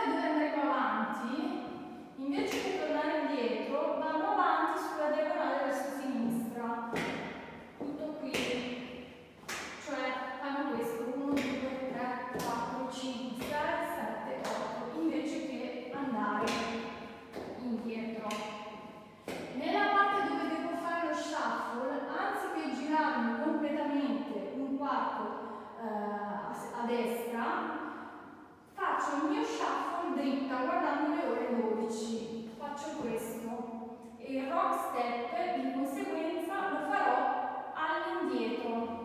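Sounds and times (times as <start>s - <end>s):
woman talking: 0.0s - 7.1s, 7.8s - 8.7s, 9.8s - 16.8s, 17.4s - 18.5s, 19.4s - 27.8s, 28.8s - 37.2s, 37.8s - 39.0s.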